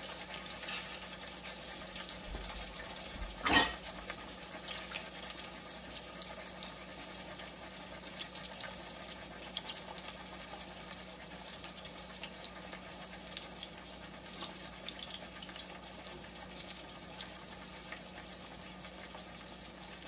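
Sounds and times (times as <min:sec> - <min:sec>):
meat sizzling in a pan: 0:00.0 - 0:20.0.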